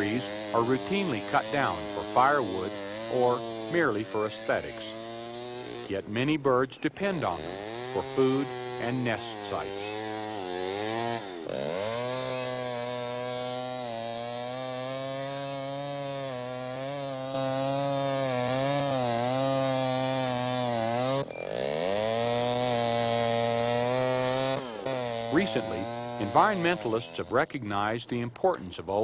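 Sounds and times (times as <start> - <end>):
chainsaw cutting wood: 0.0 - 27.8.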